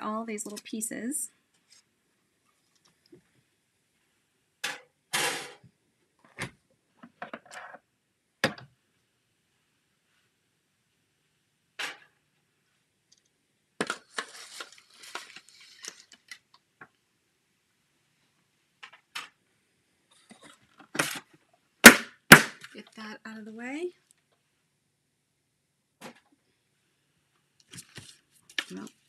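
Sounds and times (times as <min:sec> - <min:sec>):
rustling: 0:14.0 - 0:16.5.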